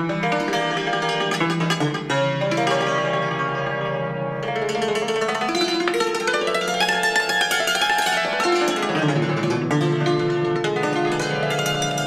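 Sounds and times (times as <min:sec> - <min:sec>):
cimbalom played with hammers: 0:00.0 - 0:12.0.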